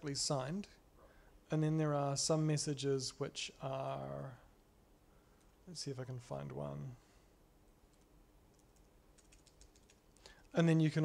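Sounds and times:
typing on laptop keyboard: 0:07.9 - 0:10.2.

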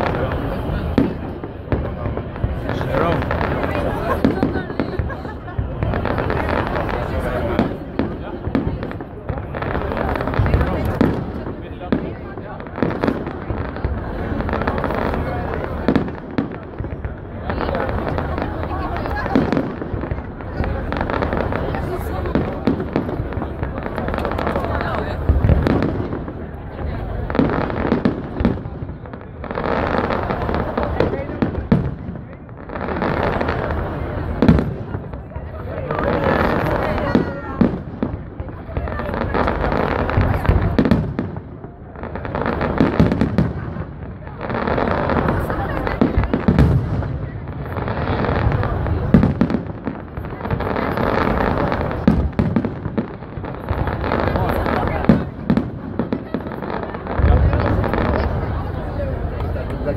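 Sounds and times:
fireworks bangs: 0:00.0 - 0:59.9
fireworks crackling bursts: 0:00.0 - 0:59.9.

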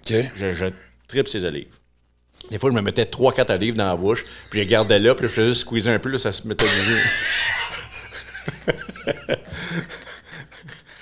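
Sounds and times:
men laughing: 0:04.2 - 0:05.7, 0:06.6 - 0:11.0.

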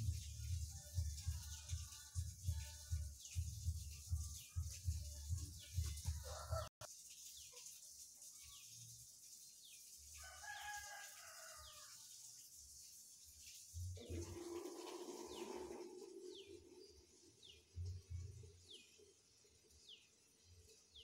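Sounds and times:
background music with low beat: 0:00.0 - 0:06.7, 0:17.7 - 0:18.7
small birds chirping: 0:00.0 - 0:10.1, 0:12.5 - 0:21.0
rooster crowing: 0:06.1 - 0:06.7, 0:10.2 - 0:12.0.

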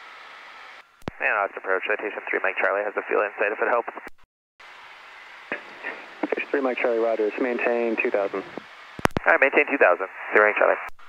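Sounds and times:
radio hiss: 0:00.2 - 0:04.1, 0:05.2 - 0:11.0.

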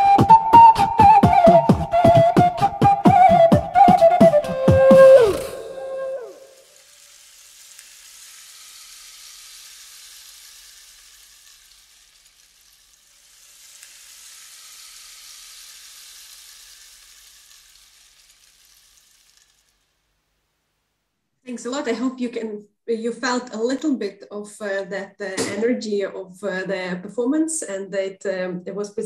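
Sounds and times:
faint even hiss: 0:03.8 - 0:22.0.

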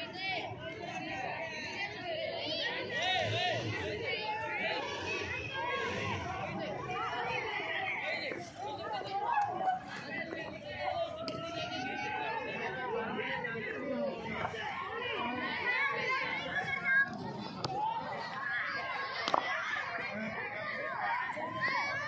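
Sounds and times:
overlapping chatter of voices: 0:00.0 - 0:22.0.

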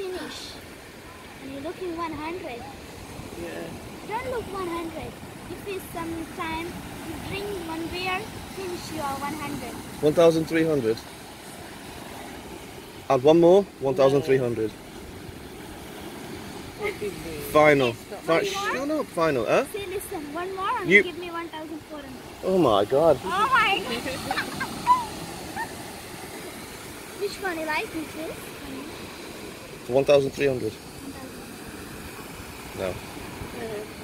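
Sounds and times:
ocean surf breaking on beach: 0:00.0 - 0:34.0.

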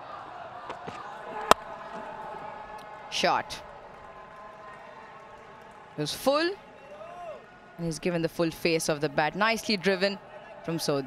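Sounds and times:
murmur of crowd: 0:00.0 - 0:11.0.

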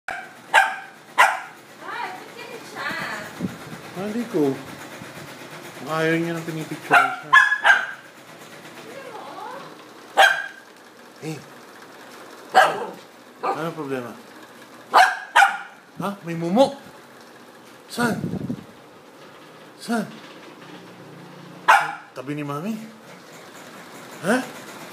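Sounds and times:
dog barking sharply: 0:00.1 - 0:01.6, 0:06.9 - 0:08.1, 0:10.2 - 0:10.7, 0:12.5 - 0:13.8, 0:14.9 - 0:15.8, 0:21.6 - 0:22.2.

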